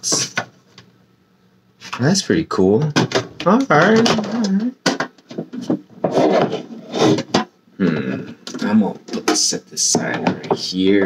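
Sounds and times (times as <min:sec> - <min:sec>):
box rubbing and rustling: 0:05.2 - 0:07.5
mumbled speech: 0:07.8 - 0:11.0.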